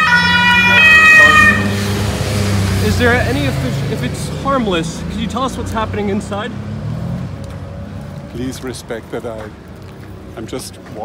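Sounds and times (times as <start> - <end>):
two-tone siren: 0.0 - 2.0
vehicle engine rumbling: 0.0 - 11.0.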